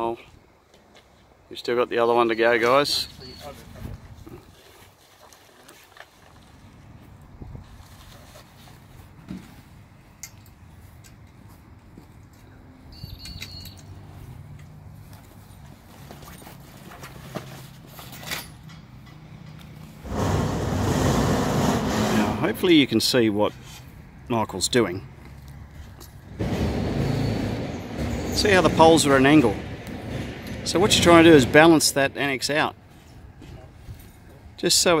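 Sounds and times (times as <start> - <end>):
tent poles knocking and rustling: 14.6 - 19.8
loud rushing noise: 20.0 - 22.8, 26.3 - 32.1.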